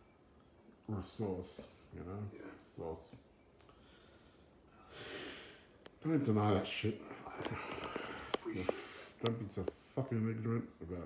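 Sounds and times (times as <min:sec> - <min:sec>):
man speaking: 0:00.8 - 0:03.3, 0:06.0 - 0:07.6, 0:08.4 - 0:11.0
man breathing in loudly: 0:03.7 - 0:05.8, 0:07.4 - 0:09.2.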